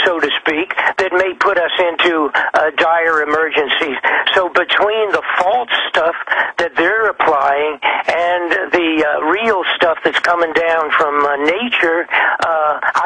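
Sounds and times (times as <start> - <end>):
man talking on radio: 0.0 - 13.0.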